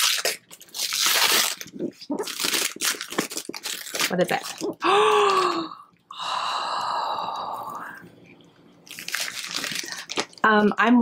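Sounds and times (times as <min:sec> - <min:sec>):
wrapping paper crinkling: 0:00.0 - 0:04.8, 0:08.8 - 0:10.5
person gasping: 0:04.8 - 0:08.0.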